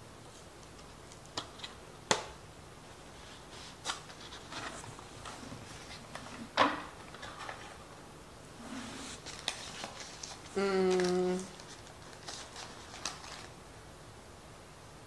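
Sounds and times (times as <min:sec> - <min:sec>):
food handling clicks and rustles: 0:03.8 - 0:07.8, 0:09.2 - 0:13.6
woman humming: 0:10.5 - 0:11.6.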